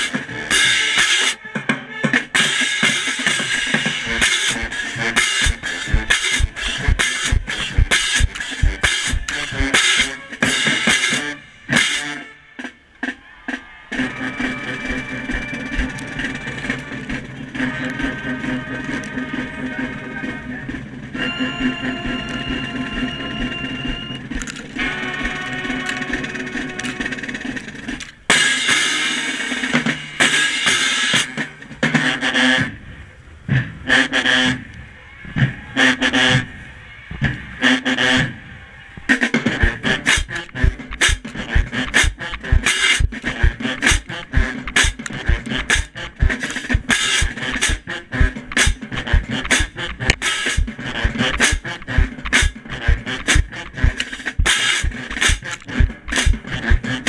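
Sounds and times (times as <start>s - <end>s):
marching band playing: 0.0s - 32.8s, 33.5s - 34.6s, 35.8s - 36.5s, 39.1s - 57.0s
sharp drum strikes: 2.4s - 11.2s, 40.1s - 56.9s.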